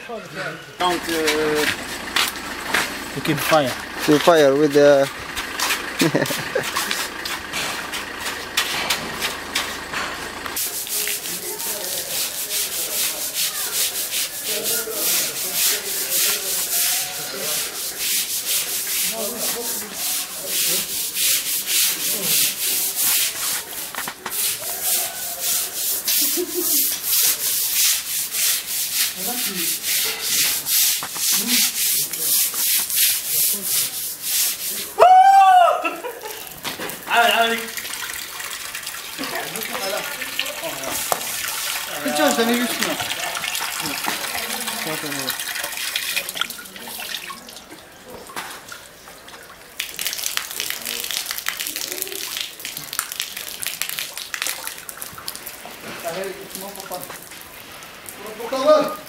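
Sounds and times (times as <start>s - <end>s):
brush scrubbing wet tiled floor: 0.8s - 5.0s, 5.6s - 9.9s, 10.6s - 35.0s, 36.0s - 47.6s, 48.4s - 59.0s.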